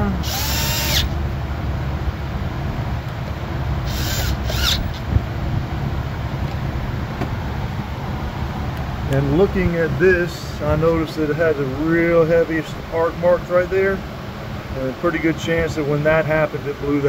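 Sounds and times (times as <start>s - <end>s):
cordless power tool whining: 0.0s - 1.2s, 3.8s - 5.1s.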